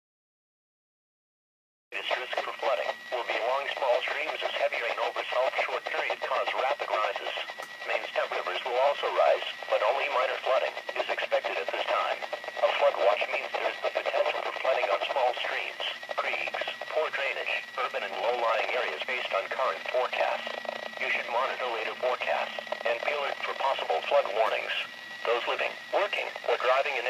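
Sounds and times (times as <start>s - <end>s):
broadcast voice through small speaker: 2.0s - 27.0s.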